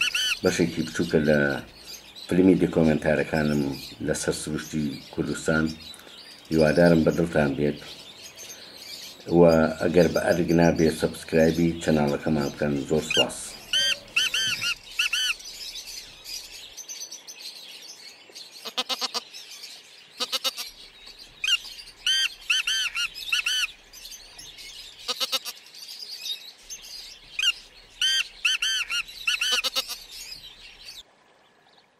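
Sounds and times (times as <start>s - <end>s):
bird chirping: 0.0s - 31.9s.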